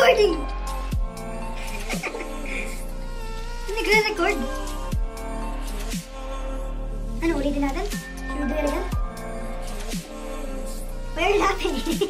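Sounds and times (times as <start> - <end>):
music with held tones: 0.0 - 12.0
short vocal sound: 1.5 - 3.8.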